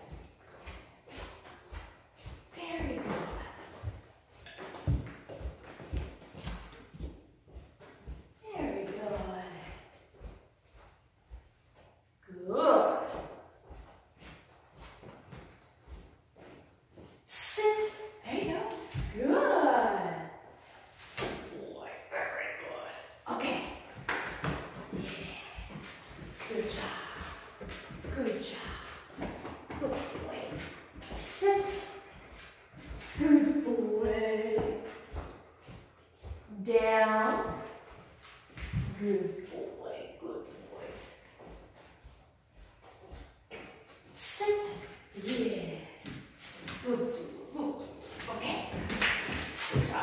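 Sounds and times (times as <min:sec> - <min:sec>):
footsteps on hard floor: 0:00.0 - 0:12.2, 0:12.9 - 0:17.2, 0:23.6 - 0:39.6, 0:40.6 - 0:45.4, 0:46.0 - 0:50.0
person speaking: 0:17.3 - 0:20.2, 0:29.7 - 0:32.0
dog claws tapping on floor: 0:46.0 - 0:50.0.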